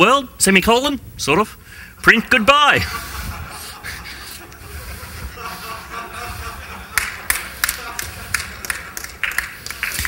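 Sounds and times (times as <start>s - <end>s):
audience laughing: 2.7s - 10.0s
scattered clapping: 6.7s - 10.0s.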